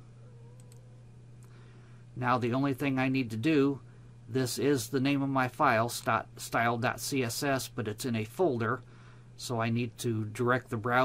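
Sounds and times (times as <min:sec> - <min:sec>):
low steady hum: 0:00.0 - 0:11.0
computer mouse clicks: 0:00.6 - 0:00.8.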